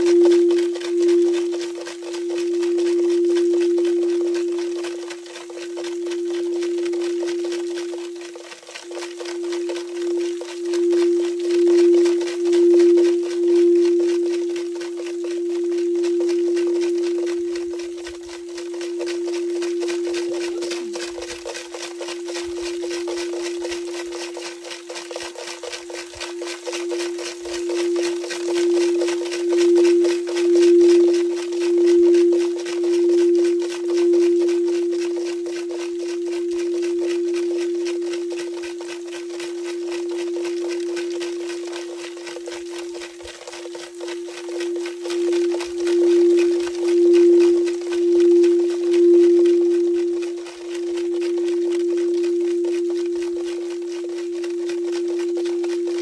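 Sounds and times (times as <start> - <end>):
faint steady hiss: 0.0 - 55.8
singing bowl tone: 0.0 - 56.0.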